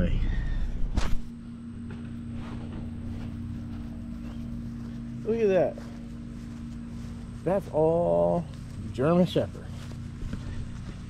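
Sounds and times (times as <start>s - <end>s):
low tonal hum: 0.0s - 11.0s.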